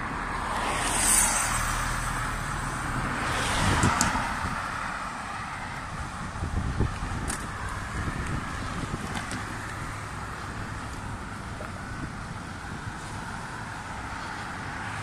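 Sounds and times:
cars passing close by: 0.0 - 15.0
hiss of tyres and engines: 0.0 - 15.0
minivan passing: 0.0 - 15.0.

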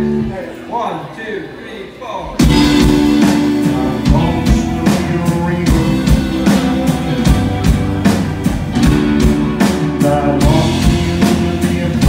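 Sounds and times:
live rock band playing: 0.0 - 0.7, 2.2 - 12.0.

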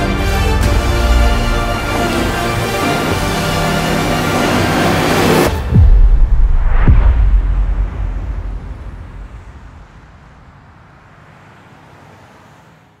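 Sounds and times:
deep low rumble: 5.6 - 10.2.

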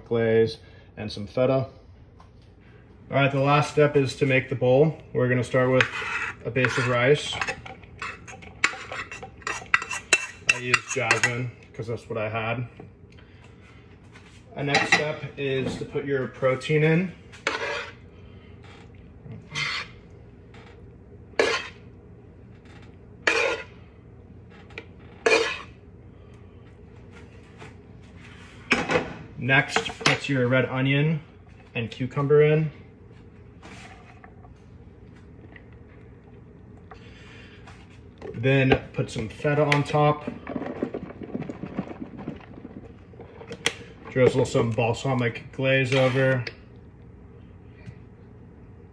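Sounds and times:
metal spoon scraping cookware: 5.8 - 11.4, 17.5 - 18.0, 19.5 - 19.9, 21.4 - 21.8, 23.3 - 23.7, 25.2 - 25.7
cheese crumbles tapping and rattling: 39.8 - 44.5.

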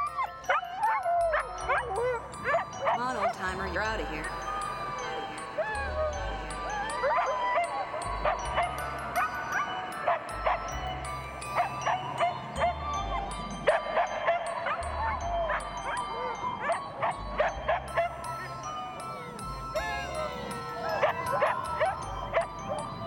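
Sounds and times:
huskies whining and yipping: 0.0 - 3.3, 4.2 - 23.0.

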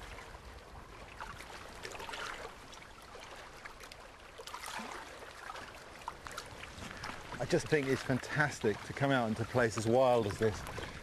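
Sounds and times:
paddle splashing in water: 0.0 - 11.0.

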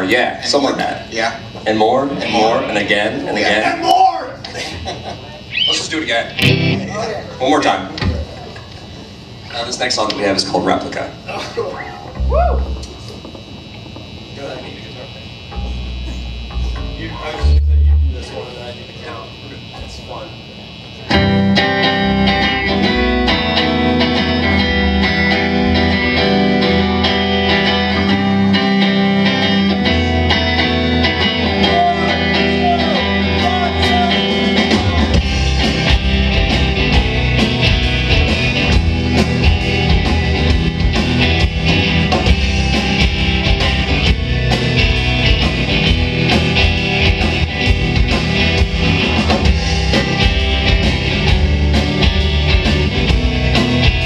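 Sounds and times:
electric guitars: 0.0 - 54.0
bass guitar: 6.3 - 7.4, 11.7 - 14.3, 15.3 - 18.4, 21.0 - 54.0
drum kit: 6.4 - 7.1, 15.5 - 18.4, 21.1 - 54.0.

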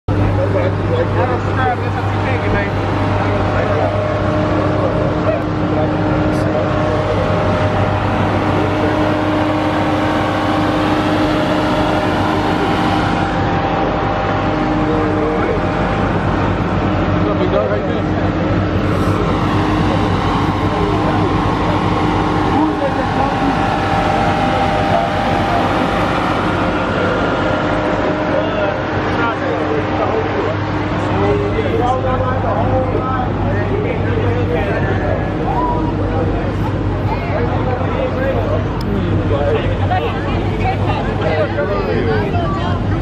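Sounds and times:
car engine idling: 0.1 - 43.0
faint voices: 0.1 - 43.0.

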